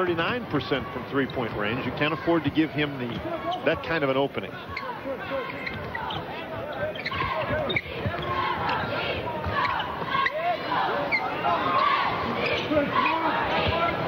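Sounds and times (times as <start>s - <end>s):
arena crowd noise: 0.0s - 14.0s
voices from crowd and court: 0.0s - 14.0s.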